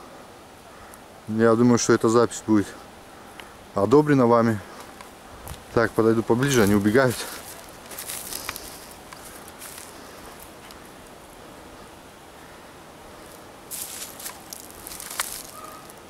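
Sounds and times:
rustling in undergrowth: 0:04.6 - 0:16.0
footsteps in grass: 0:04.7 - 0:11.7, 0:13.1 - 0:16.0
faint call: 0:15.3 - 0:16.0.

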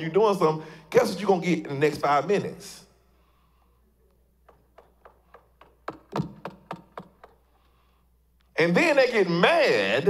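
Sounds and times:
knocking on wood: 0:04.5 - 0:07.4.

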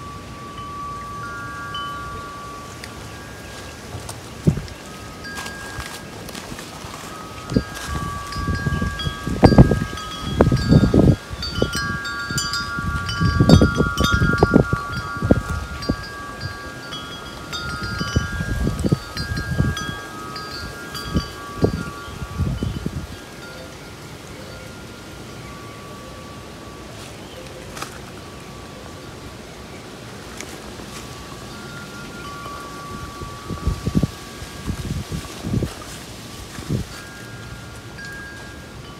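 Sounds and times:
wind buffeting microphone: 0:00.0 - 0:23.8, 0:31.7 - 0:38.9
wind chimes ringing: 0:00.0 - 0:27.5, 0:31.2 - 0:38.9.

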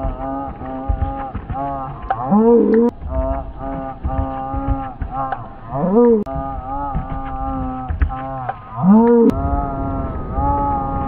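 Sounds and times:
dog howling: 0:05.7 - 0:08.0.

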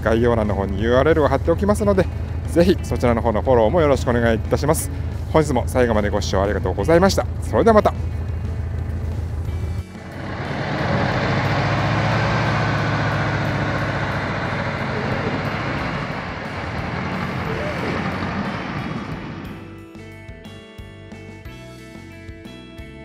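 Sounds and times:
car engine pulling away: 0:00.0 - 0:20.0
music: 0:00.0 - 0:23.0.

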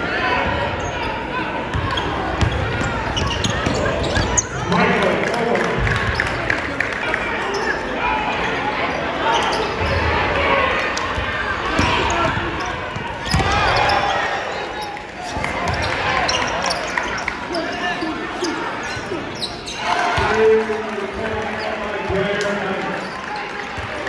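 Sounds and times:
crowd chatter in echoing gym: 0:00.0 - 0:24.0.

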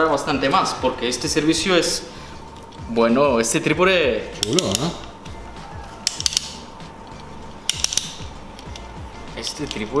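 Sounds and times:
tripod joints clicking: 0:04.4 - 0:05.2, 0:06.0 - 0:08.9.

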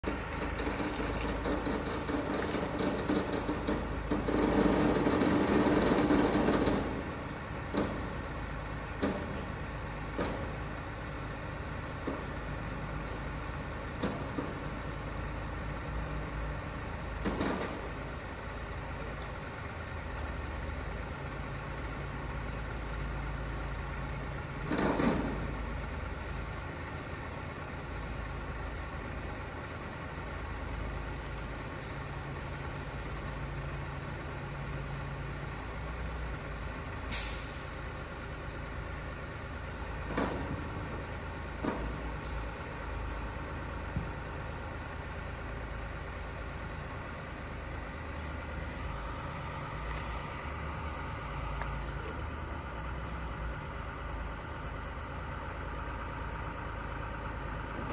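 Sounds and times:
diesel truck engines running: 0:00.0 - 0:57.9.

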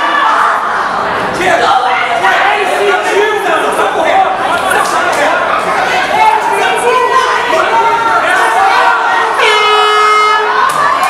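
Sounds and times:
crowd chatter: 0:00.0 - 0:11.0
air horn: 0:09.4 - 0:10.6.

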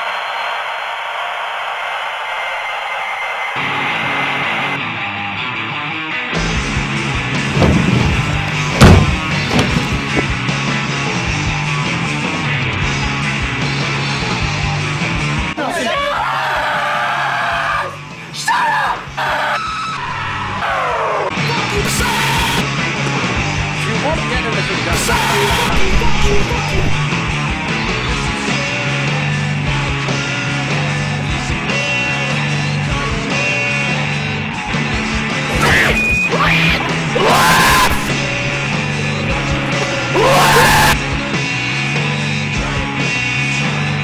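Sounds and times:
rock music: 0:03.6 - 0:15.8, 0:16.9 - 0:44.0
man screaming high-pitched: 0:15.7 - 0:19.6, 0:21.4 - 0:22.6, 0:25.0 - 0:26.6, 0:35.5 - 0:38.2, 0:40.1 - 0:41.0.

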